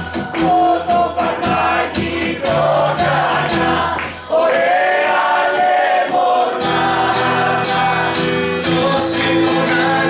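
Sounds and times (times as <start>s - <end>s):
acoustic guitar: 0.0s - 10.0s
man and woman singing duet: 0.0s - 10.0s.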